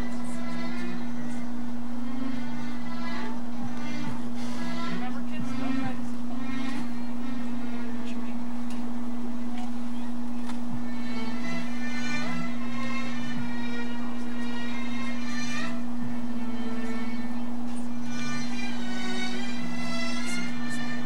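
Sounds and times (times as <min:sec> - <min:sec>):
music with drone and melody: 0:00.0 - 0:21.0.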